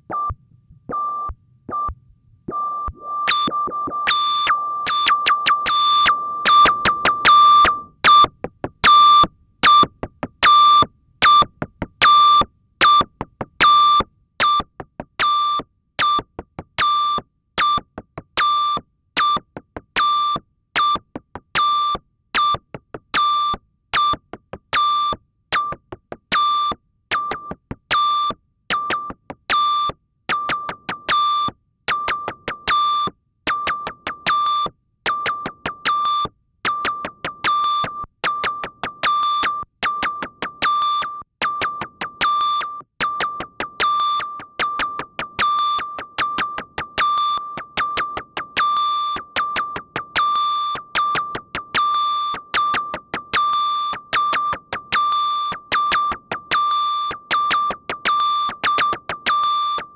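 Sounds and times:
high-pitched synth beeps: 2.5 - 11.4.

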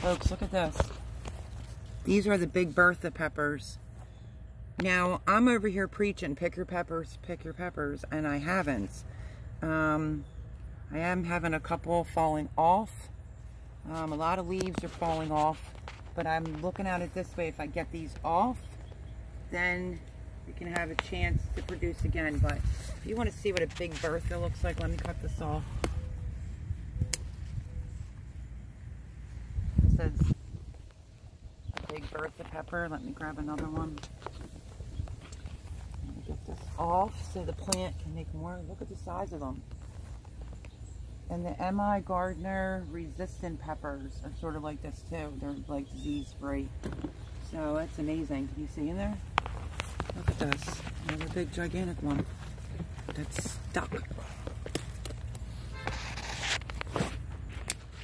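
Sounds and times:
plant leaves rustling: 0.0 - 4.1, 13.8 - 58.0
steady low rumble: 10.2 - 41.4
garden scissors snip: 27.0 - 27.5, 37.1 - 38.0, 57.6 - 58.0.

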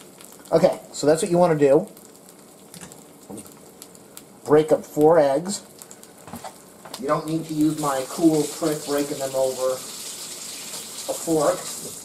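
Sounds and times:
small crackles and spits: 0.0 - 1.0, 1.8 - 12.0
eggs sizzling in a pan: 0.0 - 12.0.

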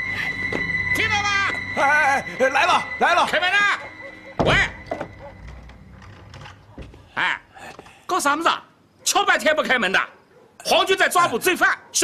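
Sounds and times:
wooden door thunk: 4.4 - 7.1.

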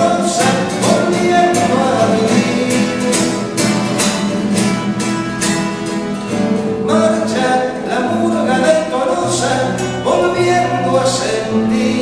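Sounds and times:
man singing: 0.0 - 3.8, 6.8 - 12.0
acoustic guitar: 0.0 - 12.0.

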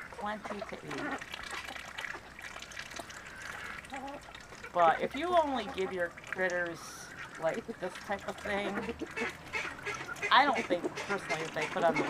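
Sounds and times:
birds pecking in mud: 0.0 - 12.0
watery dabbling and trickling: 0.0 - 12.0.

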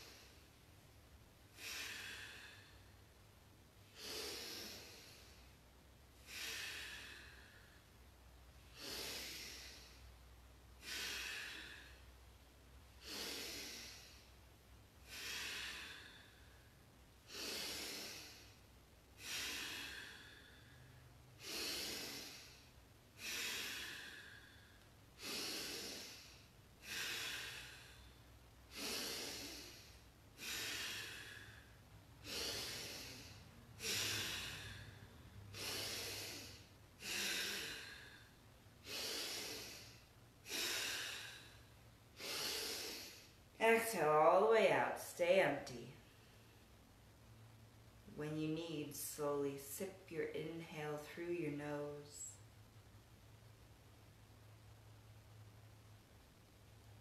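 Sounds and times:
person breathing forcefully: 1.5 - 3.2, 3.8 - 5.6, 6.2 - 8.0, 8.6 - 12.3, 12.9 - 43.4.

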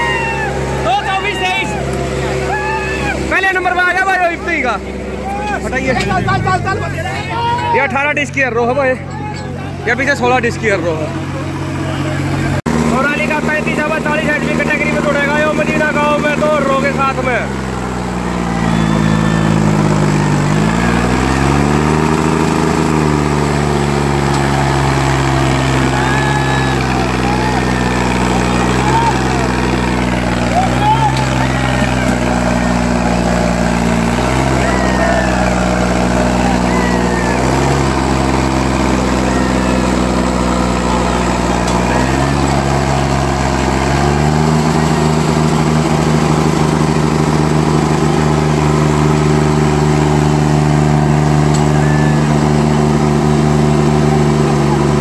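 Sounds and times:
spectators' voices and shouts: 0.0 - 55.0
tractor diesel engine working hard: 0.0 - 55.0.

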